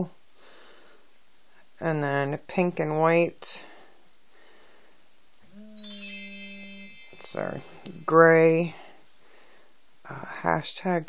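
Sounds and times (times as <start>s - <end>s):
woman humming: 5.5s - 8.1s
high ringing chime: 5.6s - 9.0s.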